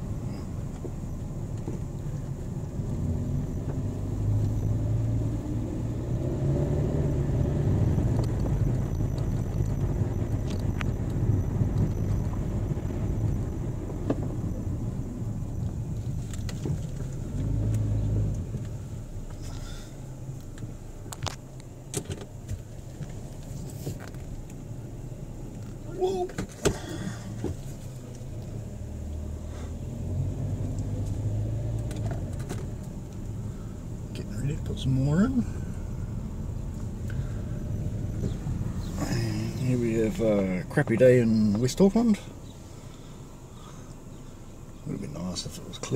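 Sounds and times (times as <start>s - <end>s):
car engine and road rumble: 0.0s - 45.9s.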